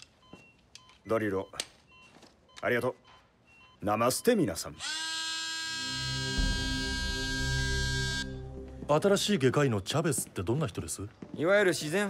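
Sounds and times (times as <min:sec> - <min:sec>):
electric drill whining: 0:04.8 - 0:08.4
low pulsing music: 0:05.7 - 0:10.4.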